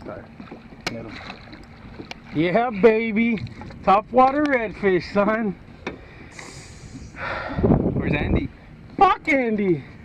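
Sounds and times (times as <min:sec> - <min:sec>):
low boat background noise: 0:00.0 - 0:10.0.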